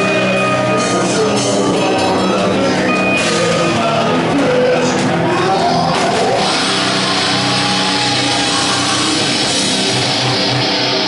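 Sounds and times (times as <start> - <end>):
distorted electric guitar chords: 0.0 - 11.0
live rock band playing: 0.0 - 11.0.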